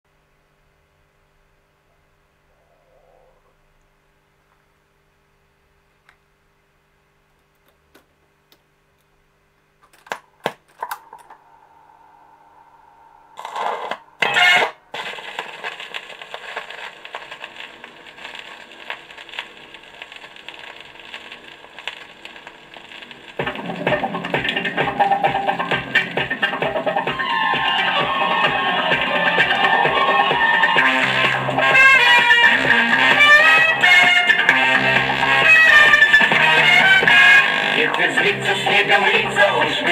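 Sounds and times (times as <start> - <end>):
vinyl surface crackle: 13.3 - 39.9
recorded music with steady beat: 23.2 - 39.9
stylus thumps on vinyl: 23.3 - 38.3.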